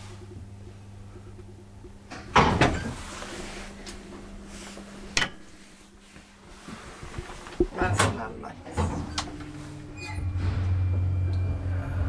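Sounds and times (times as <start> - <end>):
faint steady hum: 0.0 - 12.0
elevator door clattering shut: 7.8 - 11.6.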